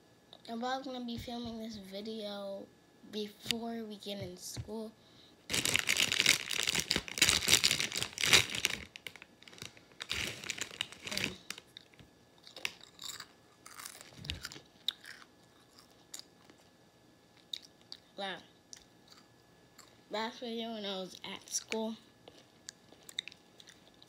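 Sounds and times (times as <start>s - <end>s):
foil chip bag rustling: 5.5s - 14.7s
crunching and chewing chips: 5.5s - 16.7s, 17.3s - 20.1s, 21.4s - 24.0s.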